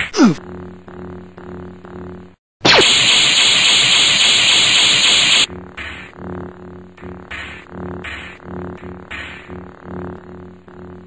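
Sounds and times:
hissing static sound effect: 0:02.6 - 0:05.5.

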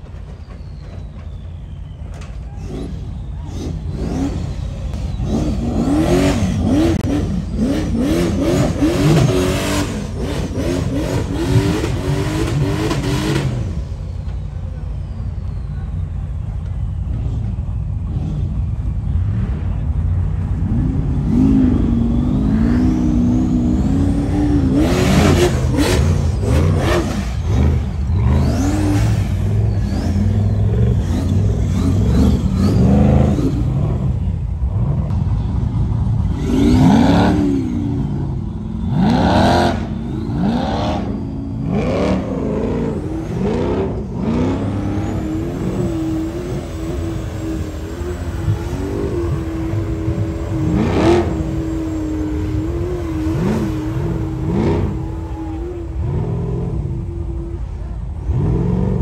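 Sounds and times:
buggy engine revving hard: 0:02.7 - 0:13.8, 0:20.6 - 0:35.2, 0:36.2 - 0:59.0.

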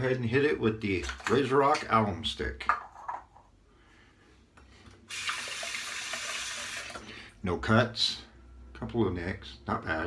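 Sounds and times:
tap water running into sink: 0:05.1 - 0:07.0.

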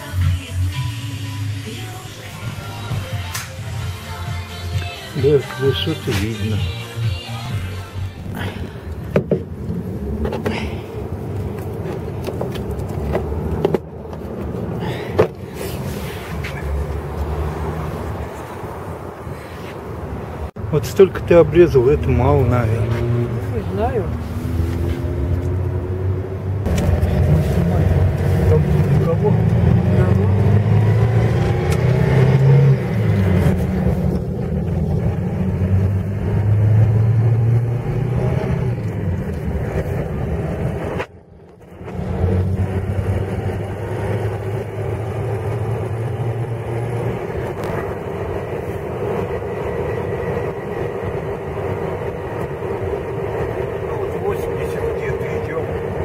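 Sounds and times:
engine and road noise inside vehicle: 0:00.0 - 0:56.0.

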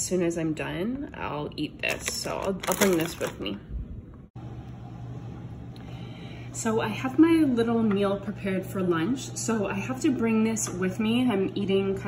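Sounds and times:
steady low hum: 0:03.6 - 0:12.0.

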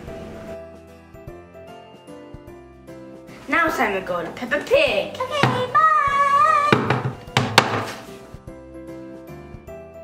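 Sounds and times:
soft background music: 0:00.0 - 0:10.0
sharp knocks: 0:05.3 - 0:05.8, 0:06.7 - 0:08.1.

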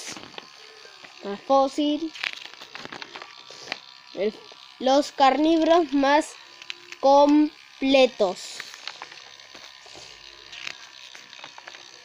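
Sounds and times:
magazine pages rustling: 0:00.0 - 0:01.1, 0:02.1 - 0:04.0, 0:08.6 - 0:12.0.

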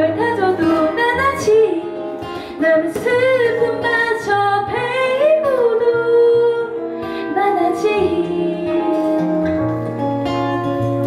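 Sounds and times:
woman singing a ballad: 0:00.0 - 0:09.6
soft guitar and keyboard: 0:00.0 - 0:11.0.

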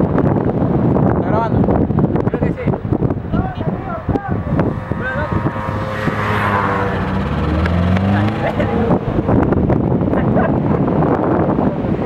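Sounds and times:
wind noise on microphone: 0:00.0 - 0:12.0
vehicle engine running: 0:03.0 - 0:11.3.

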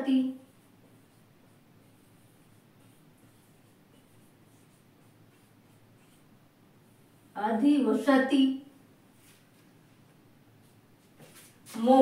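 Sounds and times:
marker pen on whiteboard: 0:00.0 - 0:12.0.

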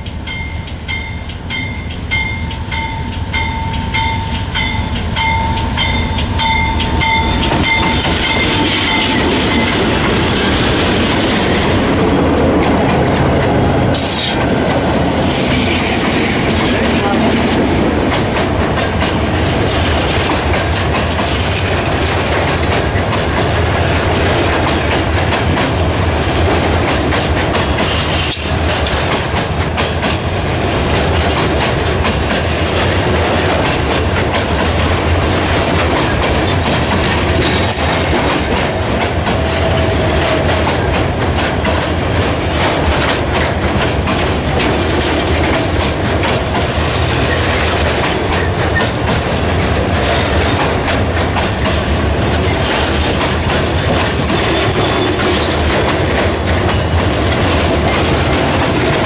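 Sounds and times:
steady high ringing tones: 0:00.0 - 0:10.0
freight train rumbling past: 0:00.0 - 0:59.0
wheels clacking over rail joints: 0:02.7 - 0:59.0.

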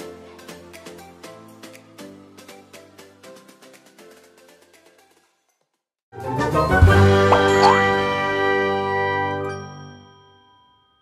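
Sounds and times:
bright chime: 0:07.3 - 0:07.9
jingle closing chord: 0:07.3 - 0:08.0.

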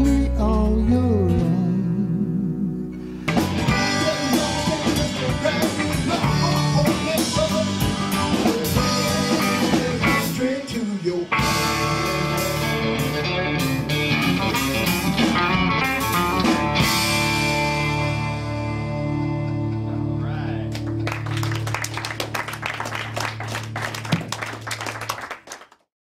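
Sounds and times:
keyboard: 0:00.0 - 0:24.0
electric bass: 0:00.0 - 0:24.9
electric guitar: 0:00.0 - 0:25.2
drum kit: 0:03.3 - 0:18.8, 0:20.8 - 0:24.9.

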